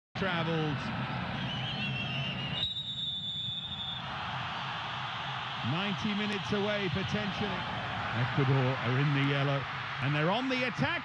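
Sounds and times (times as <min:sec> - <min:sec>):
stadium crowd noise: 0:00.2 - 0:11.0
referee's whistle blast: 0:01.6 - 0:04.0.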